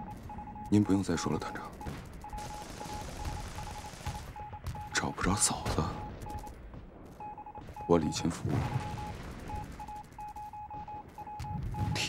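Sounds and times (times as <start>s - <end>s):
morse code beeping: 0.0s - 6.5s, 7.2s - 12.0s.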